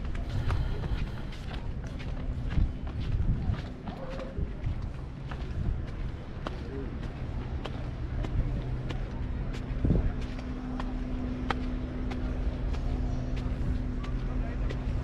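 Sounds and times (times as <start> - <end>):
footsteps on stone: 0.0 - 15.0
outdoor rumble: 0.0 - 15.0
steady low hum: 0.0 - 15.0.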